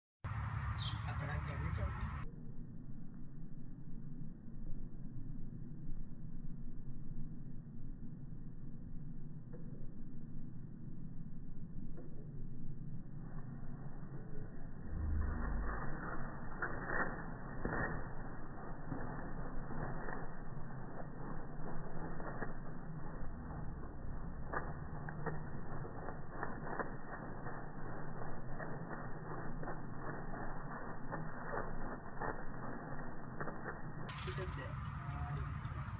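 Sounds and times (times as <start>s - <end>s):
peacock tail feathers rattling: 14.4s - 35.9s.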